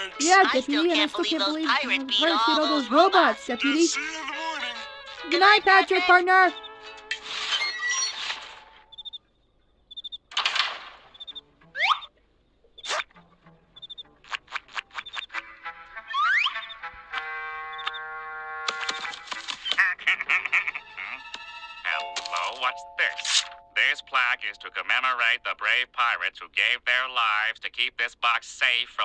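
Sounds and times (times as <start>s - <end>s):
held musical chord: 0.0s - 6.6s, 21.8s - 25.2s
cartoon high chirps: 11.2s - 12.1s, 16.1s - 16.8s.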